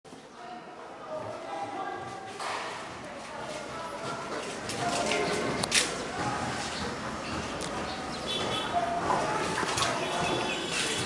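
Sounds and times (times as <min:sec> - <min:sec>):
faint background voices: 0:00.1 - 0:11.0.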